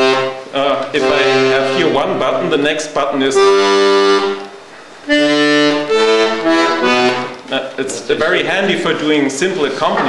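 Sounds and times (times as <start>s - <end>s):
accordion bass notes: 0.0s - 10.0s.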